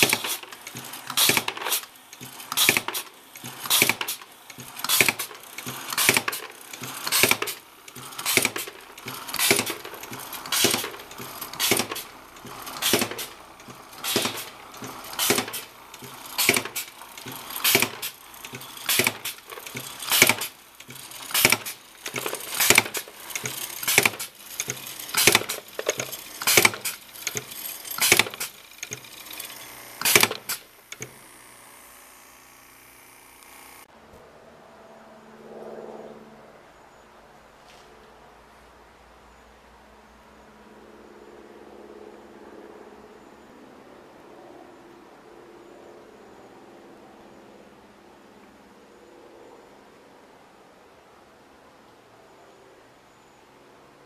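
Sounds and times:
cork machine clacking with air hiss: 0.0 - 31.4.

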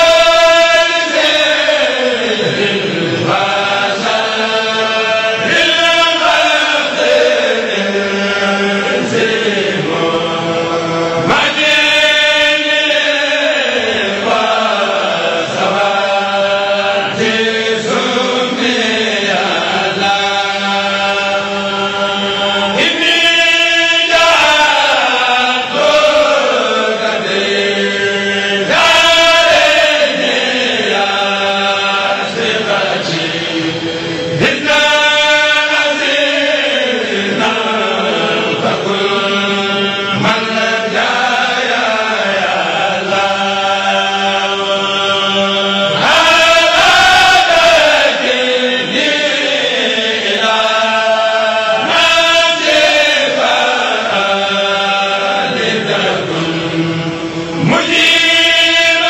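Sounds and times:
men chanting in unison: 0.0 - 59.0.

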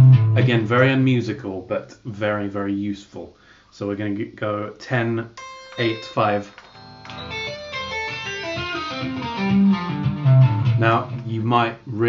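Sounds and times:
electric guitar legato run: 5.4 - 11.2.

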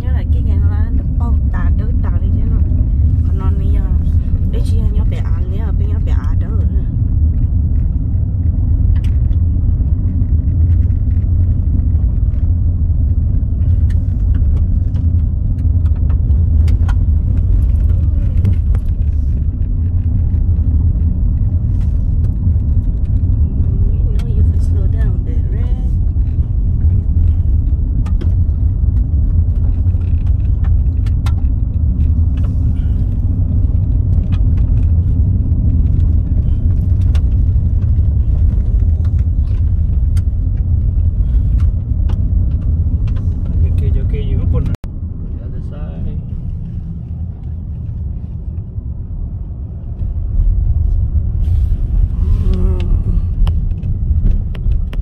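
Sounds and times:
tyre and road rumble: 0.0 - 55.0.

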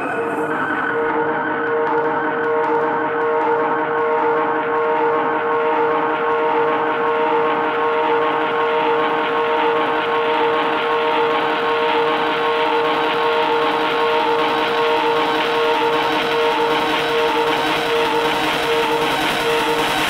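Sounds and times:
noisy synth drone: 0.0 - 20.0.

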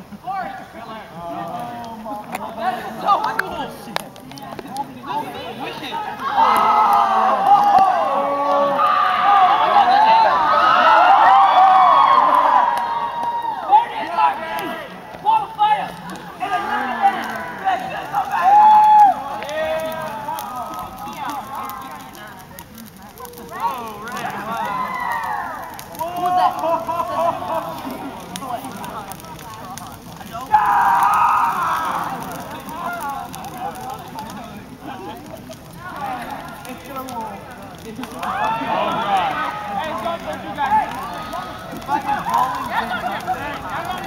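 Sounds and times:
crowd hollering: 5.2 - 22.4, 23.0 - 44.0.

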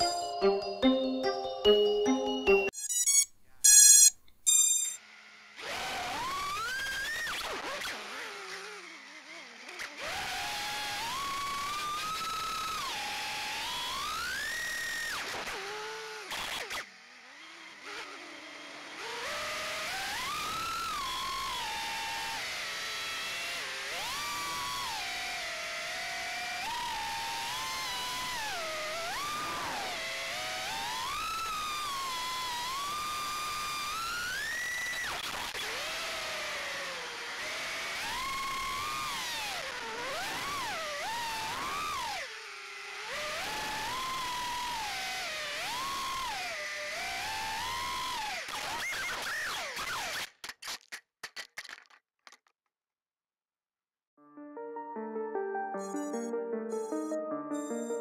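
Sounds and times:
electronic jingle with beeps: 0.0 - 5.0, 54.2 - 58.0
quadcopter motors whining: 2.8 - 50.2.

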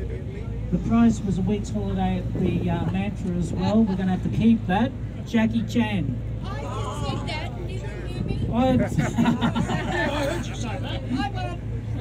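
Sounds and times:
ferry engine drone: 0.0 - 12.0
people talking: 0.0 - 12.0
man laughing: 8.6 - 10.9.

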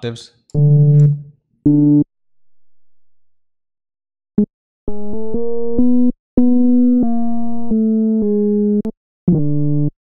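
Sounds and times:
synth bass notes: 0.6 - 2.0.

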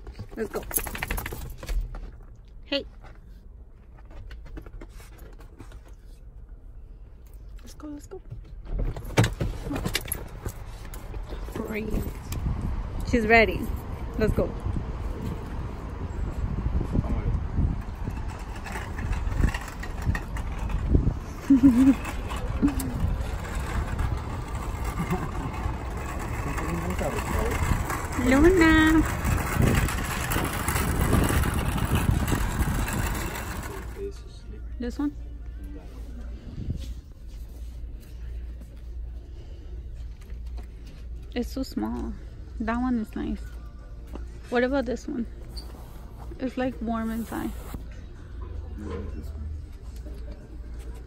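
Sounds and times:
shopping cart rattling on asphalt: 17.8 - 34.4.

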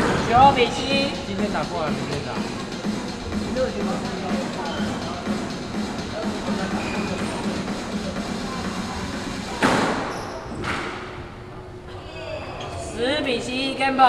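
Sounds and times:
background music: 0.0 - 10.1
squash ball struck hard: 9.6 - 11.1.

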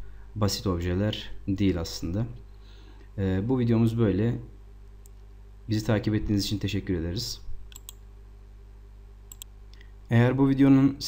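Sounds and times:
faint electrical hum: 0.0 - 11.0
computer mouse clicks: 7.7 - 8.0, 9.3 - 9.9.

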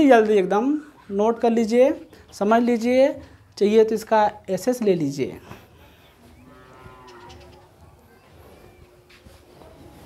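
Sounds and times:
distant animal calls: 5.8 - 9.0.

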